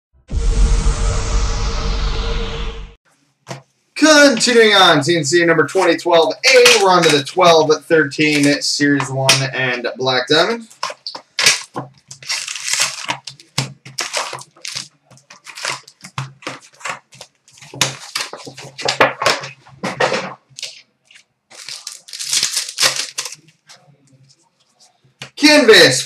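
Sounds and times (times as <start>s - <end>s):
wrapped packs crinkling: 5.8s - 7.3s, 8.1s - 8.6s, 10.4s - 19.9s, 20.5s - 23.9s
cardboard box tearing: 11.4s - 19.0s, 21.5s - 23.4s.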